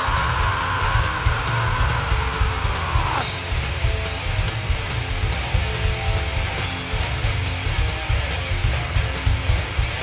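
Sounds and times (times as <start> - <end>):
heavy metal band playing live: 0.0 - 10.0.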